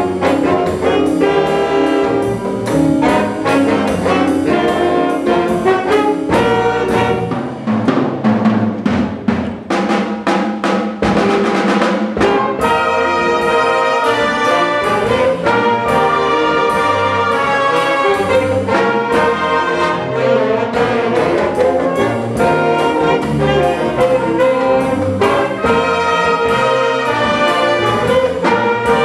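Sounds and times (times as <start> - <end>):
brass long loud chords: 0.0 - 7.5, 12.2 - 29.0
jazz band playing mambo: 0.0 - 29.0.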